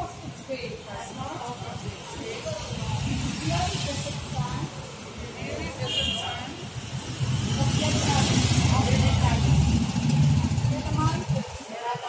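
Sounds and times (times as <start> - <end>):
vehicle passing with low rumble: 6.6 - 11.6.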